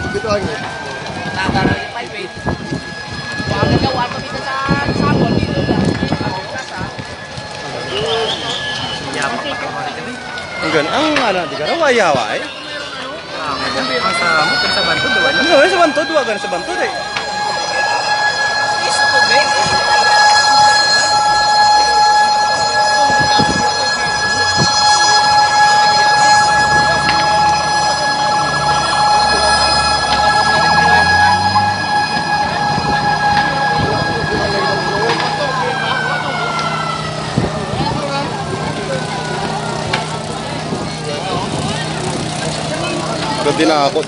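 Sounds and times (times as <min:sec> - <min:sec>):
crowd voices: 0:00.0 - 0:44.0
siren winding down: 0:00.0 - 0:44.0.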